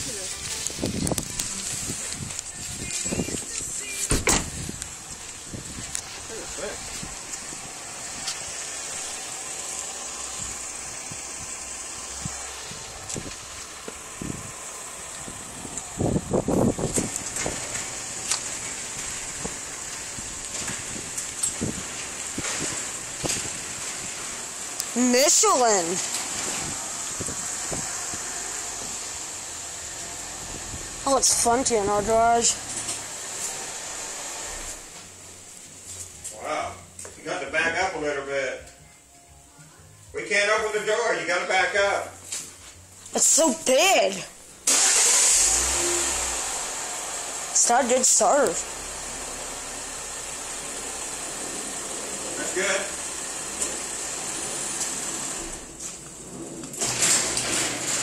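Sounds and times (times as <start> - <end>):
car engine idling: 0.0 - 35.9, 43.2 - 58.0.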